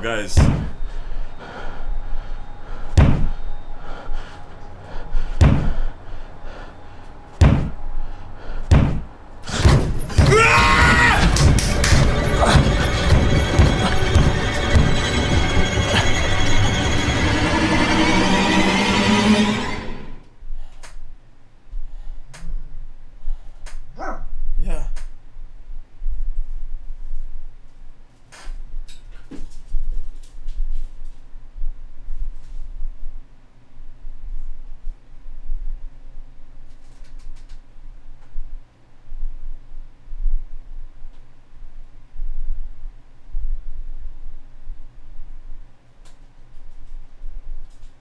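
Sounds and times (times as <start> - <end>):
heavy slamming thuds: 0.3 - 0.8, 2.9 - 3.4, 5.3 - 5.9, 7.4 - 7.8, 8.7 - 10.6
low dark music: 0.8 - 20.3
dense burst with falling shriek: 9.5 - 20.2
dog barking: 24.0 - 24.3.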